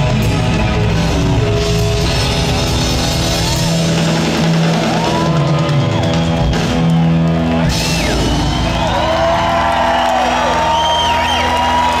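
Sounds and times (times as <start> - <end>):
audience cheering: 2.7 - 12.0
whistles: 5.7 - 6.9, 10.6 - 11.8.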